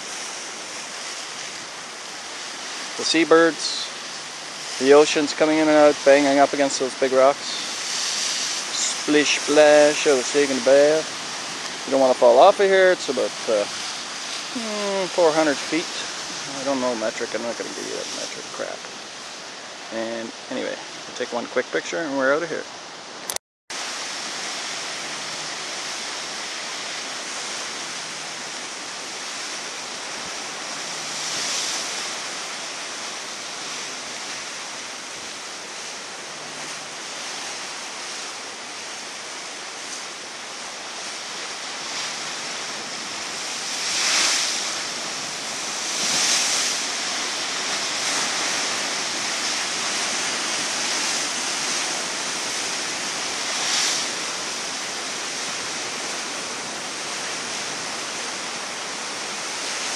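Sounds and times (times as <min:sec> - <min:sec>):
ocean surf crashing on rocks: 0:00.0 - 0:59.9.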